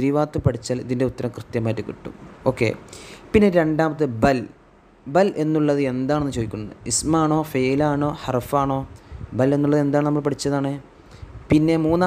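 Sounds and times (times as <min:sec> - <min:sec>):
man narrating: 0:00.0 - 0:10.9, 0:11.5 - 0:12.0.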